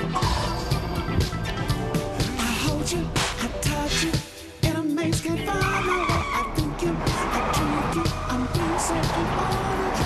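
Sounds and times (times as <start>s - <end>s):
pop music with steady beat: 0.0s - 10.0s
car tyres squealing: 5.4s - 10.0s.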